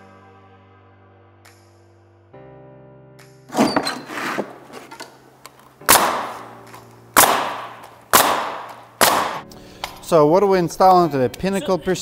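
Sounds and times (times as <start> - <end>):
background music: 0.0 - 12.0
nail gun shots: 5.8 - 9.4.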